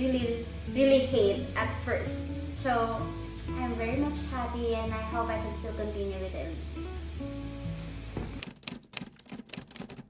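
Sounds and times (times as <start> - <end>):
background music: 0.0 - 9.8
sharp clicks and taps: 8.2 - 10.0.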